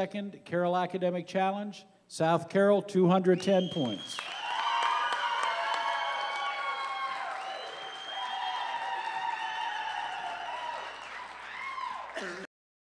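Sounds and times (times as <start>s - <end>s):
audience applause and cheering: 4.2s - 12.5s.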